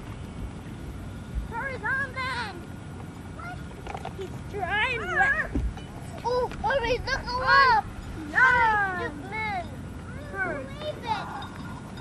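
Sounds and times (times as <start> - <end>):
low steady rumble: 0.0 - 12.0
children calling and shouting: 1.5 - 11.9.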